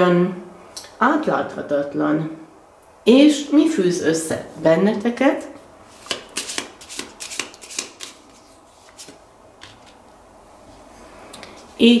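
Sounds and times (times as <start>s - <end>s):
cards being shuffled: 5.9s - 10.0s.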